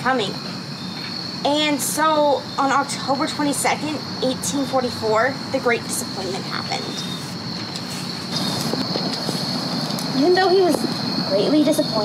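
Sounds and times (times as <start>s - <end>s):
thin steady high tone: 0.0s - 12.0s.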